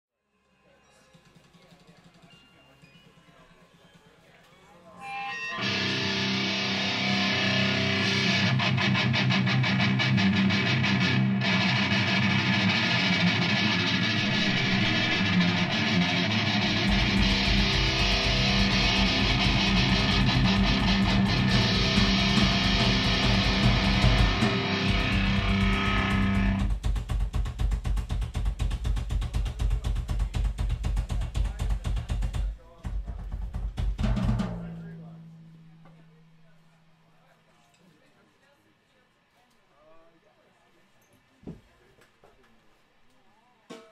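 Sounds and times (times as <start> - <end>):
electric guitar: 5.0 - 26.8
fast bass drum strokes: 5.6 - 35.0
drum kit playing: 5.6 - 35.7.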